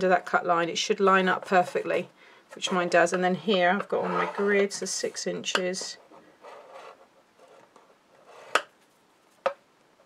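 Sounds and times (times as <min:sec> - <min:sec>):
scoring tool scraping cardstock: 0:03.8 - 0:08.7.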